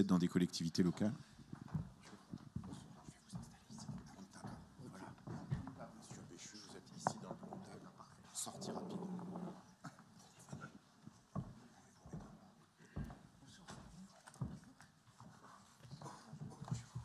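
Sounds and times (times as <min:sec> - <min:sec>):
thumps and knocks of footsteps: 0:00.9 - 0:17.0.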